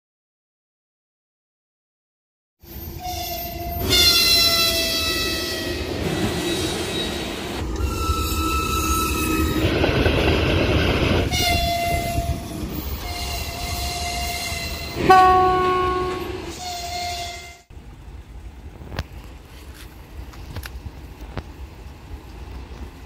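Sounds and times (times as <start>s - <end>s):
train wheels rumbling: 2.6s - 23.0s
locomotive horn blasts: 11.3s - 12.4s, 13.0s - 17.7s.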